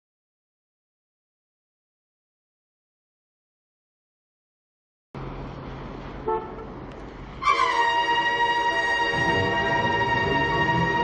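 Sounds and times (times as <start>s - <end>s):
city street traffic hum: 5.2s - 7.6s
short car horn toot: 6.2s - 6.7s.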